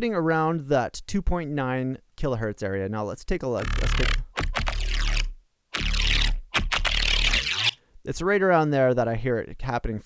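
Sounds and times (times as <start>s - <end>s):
synthesized bassline loop: 3.6s - 7.8s.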